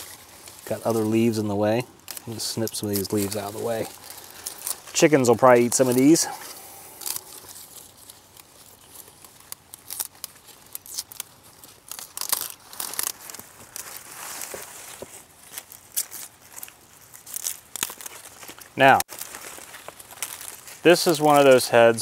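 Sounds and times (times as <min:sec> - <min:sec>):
leaves rustling and crinkling: 0:00.0 - 0:22.0
vegetable stalk snapping: 0:02.0 - 0:04.9, 0:06.9 - 0:14.6, 0:15.5 - 0:20.8.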